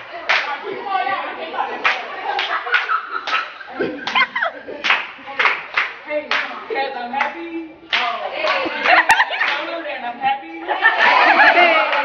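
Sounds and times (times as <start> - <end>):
group clapping to a beat: 0.0 - 0.7, 1.7 - 9.8, 10.6 - 12.0.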